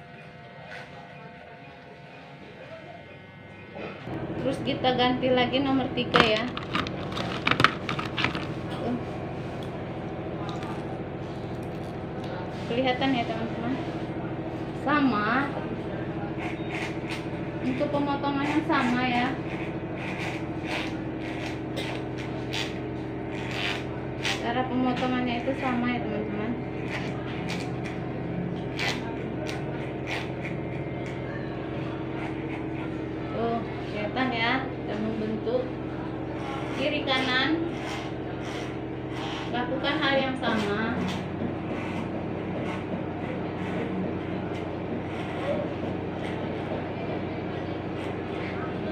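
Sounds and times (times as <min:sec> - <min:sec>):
electric hair clipper humming: 0:00.0 - 0:09.0, 0:16.3 - 0:35.0, 0:35.7 - 0:46.8.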